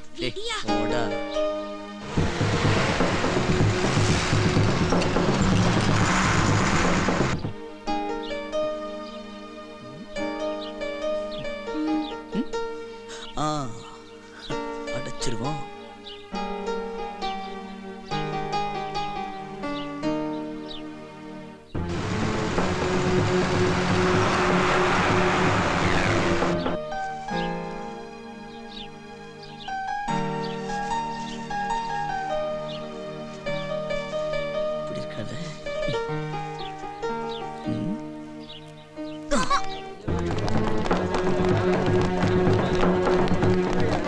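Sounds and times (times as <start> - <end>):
background film music: 0.0 - 44.0
tyres hissing on dirt: 1.8 - 7.6, 21.8 - 27.6
vehicle engines rumbling: 1.9 - 7.6, 21.8 - 27.3, 39.7 - 44.0.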